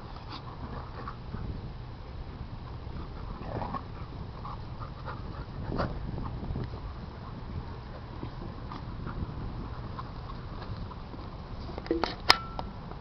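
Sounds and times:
dogs play-fighting vocalizing: 0.0 - 11.4
steady low rumble: 0.0 - 13.0.

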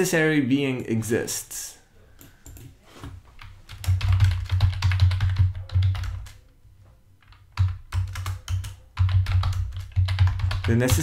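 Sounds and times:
typing on computer keyboard: 2.2 - 2.7, 3.4 - 6.4, 7.2 - 11.0.

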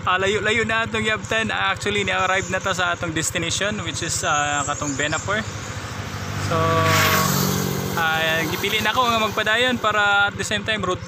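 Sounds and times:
scooter engine idling: 0.0 - 11.0.

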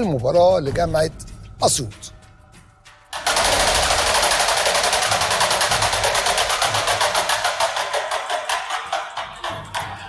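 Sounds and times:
prize wheel clicking: 3.2 - 10.0.

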